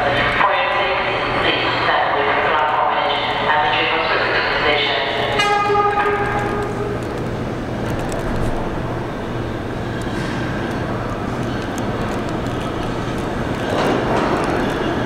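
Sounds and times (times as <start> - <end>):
train rumbling through tunnel: 0.0 - 15.0
subway train horn blast: 2.6 - 7.0.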